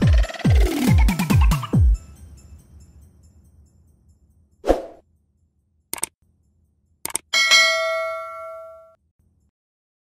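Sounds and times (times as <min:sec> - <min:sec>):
bell ding: 0:07.4 - 0:09.0.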